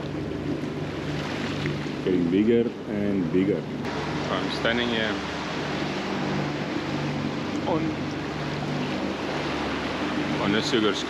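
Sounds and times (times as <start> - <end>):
low hum: 0.0 - 11.0
wind and water rushing past boat: 0.0 - 11.0.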